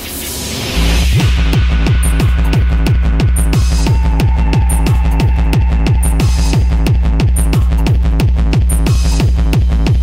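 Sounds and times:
deep kick drum: 1.1s - 10.0s.

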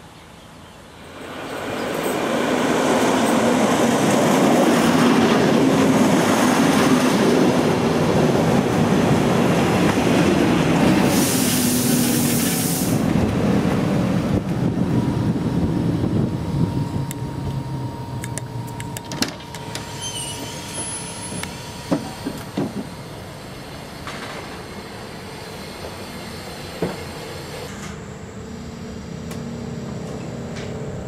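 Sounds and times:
electric train running: 1.6s - 27.8s
sharp hiss: 10.9s - 13.1s
steady tone: 14.8s - 21.9s.

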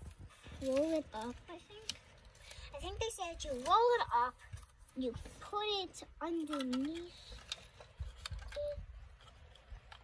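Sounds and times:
plastic capsule clicks and rustles: 6.2s - 10.0s.

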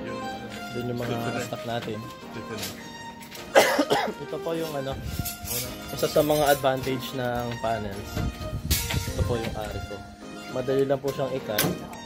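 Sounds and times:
background music: 0.0s - 12.0s
man coughing: 3.5s - 4.2s.

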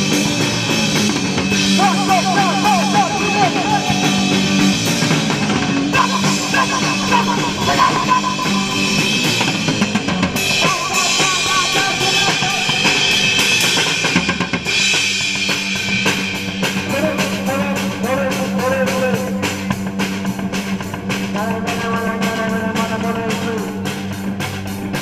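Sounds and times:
drum kit playing: 0.0s - 25.0s
electric guitar: 0.0s - 25.0s.

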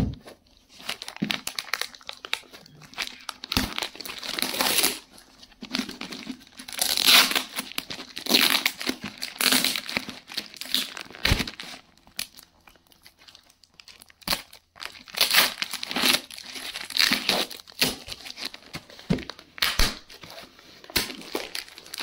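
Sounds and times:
plastic mailer crinkling and tearing: 0.4s - 22.0s.

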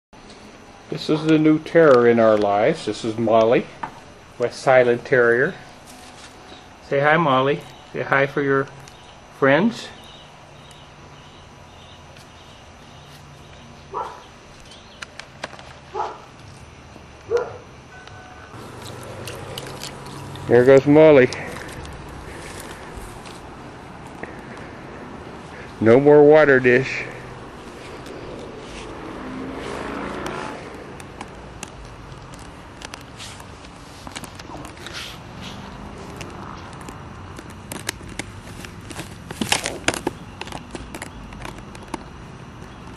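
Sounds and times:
faint steady hum: 0.2s - 42.9s
puppy barking: 13.9s - 14.3s, 15.9s - 16.3s, 17.3s - 17.7s
vehicle passing by: 18.5s - 32.8s, 34.6s - 37.3s.

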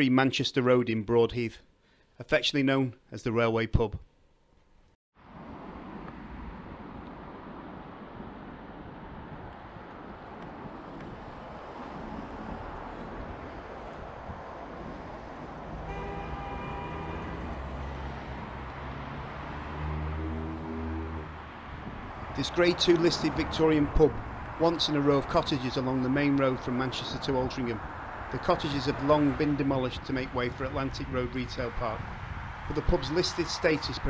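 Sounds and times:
vehicle engine: 5.2s - 30.6s
road traffic passing: 5.2s - 34.0s.

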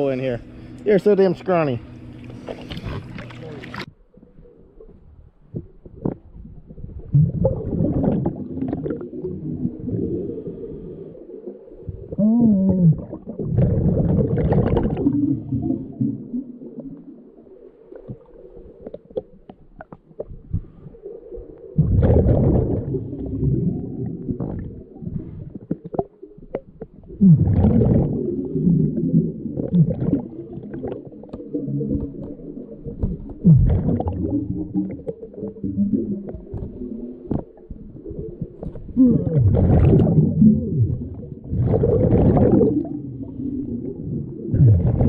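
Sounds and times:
quiet breathing and bubbling: 0.0s - 45.0s
exhaled bubbles rumbling and gurgling: 1.5s - 45.0s.

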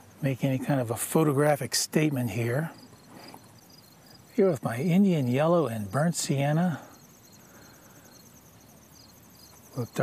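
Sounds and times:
insects chirping: 0.0s - 10.0s
insects trilling: 0.0s - 10.0s.

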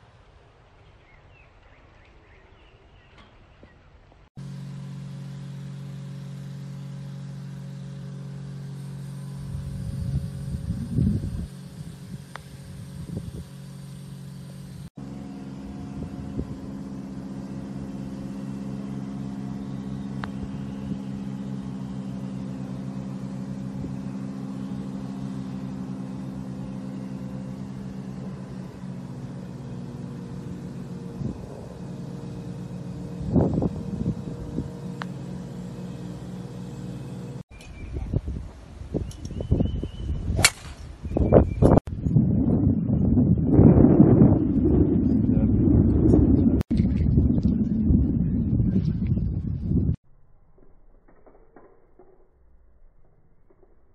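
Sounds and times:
motor humming: 4.4s - 38.4s.

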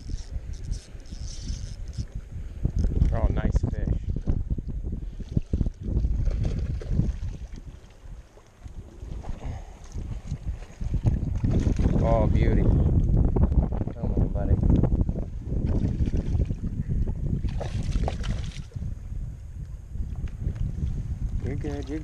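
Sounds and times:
fishing reel clicks: 0.0s - 2.1s
wind buffeting microphone: 0.0s - 22.0s.

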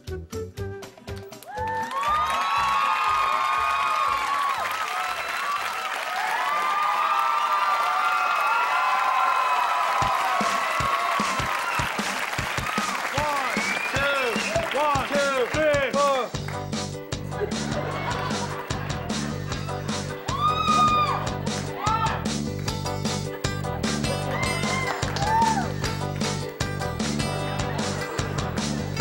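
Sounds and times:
audience clapping: 0.8s - 29.0s
audience whooping and shouting: 1.4s - 15.4s, 19.6s - 22.3s, 24.1s - 25.8s.

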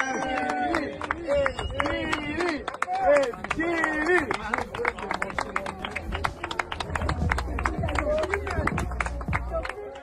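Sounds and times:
hand clapping: 0.0s - 10.0s.

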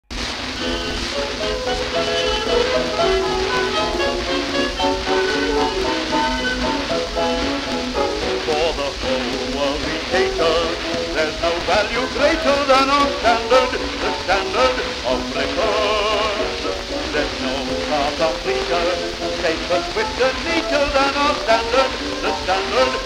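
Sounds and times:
record surface hiss and crackle: 0.0s - 23.0s
dance band music on record: 0.1s - 23.0s
man singing: 2.0s - 23.0s.

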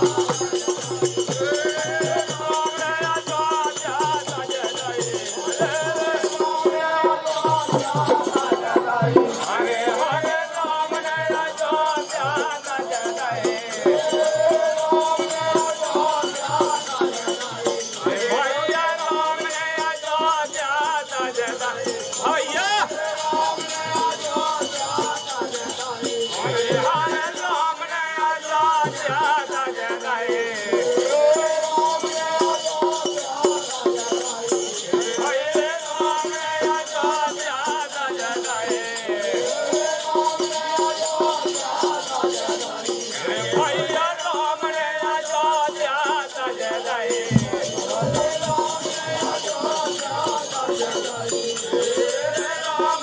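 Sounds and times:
hand drum beat: 0.0s - 27.6s, 45.4s - 53.0s
rattling jingling percussion: 0.0s - 53.0s
barrel drum beating: 47.2s - 50.2s.

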